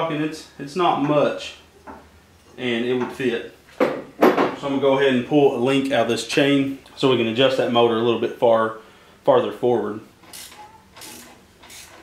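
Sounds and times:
wrench rasping on bolts: 0:10.2 - 0:12.0.

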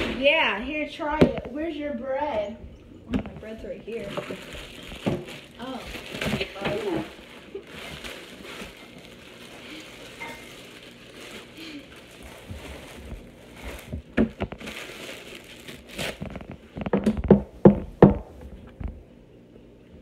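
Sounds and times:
plastic bag crinkling: 0:03.4 - 0:16.9.

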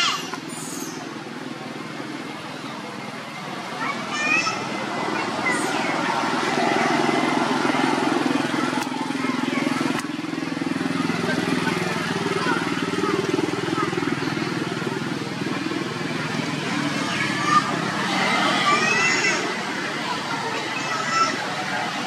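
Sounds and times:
faint indistinct voices: 0:00.0 - 0:22.0
steady motor drone: 0:04.5 - 0:22.0.

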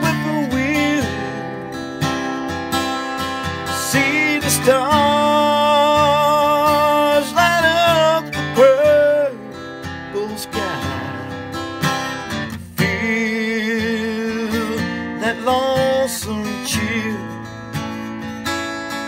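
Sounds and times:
man singing country song: 0:00.0 - 0:18.5
strummed acoustic guitar: 0:00.0 - 0:19.0.

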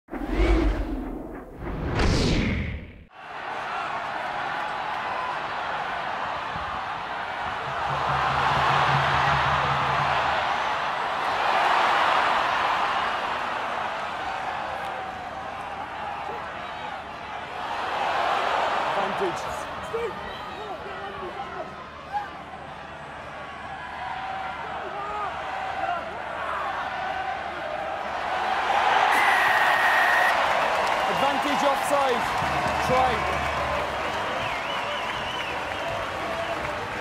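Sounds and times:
whooshing sound effect: 0:00.1 - 0:03.1
stadium crowd noise: 0:03.1 - 0:37.0.

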